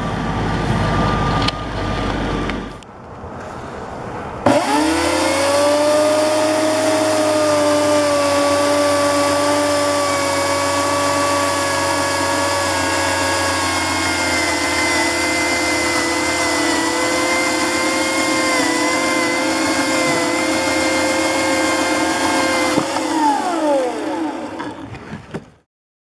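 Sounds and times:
chainsaw cutting ice: 4.4 - 25.3.

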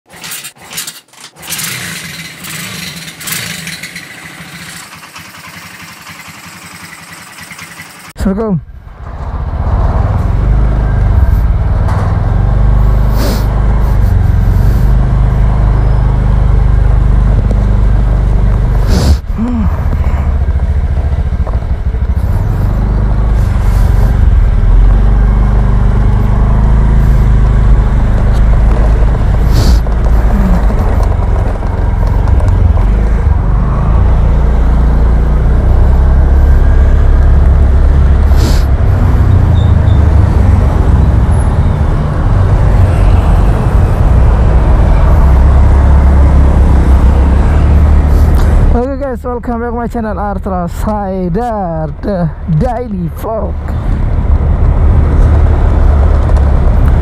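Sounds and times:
scooter engine running: 0.1 - 8.2, 12.4 - 49.7
wind and road noise: 6.5 - 57.0.

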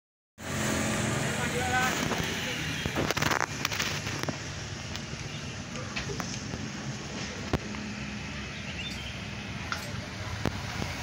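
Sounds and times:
traffic rumble: 0.4 - 11.0.

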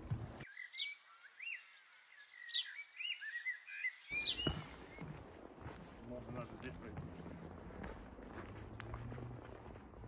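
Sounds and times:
small birds chirping: 0.0 - 8.2.

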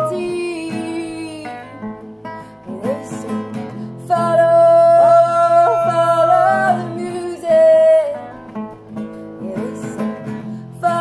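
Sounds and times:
strummed acoustic guitar: 0.0 - 11.0
person singing a long note: 4.8 - 7.1.

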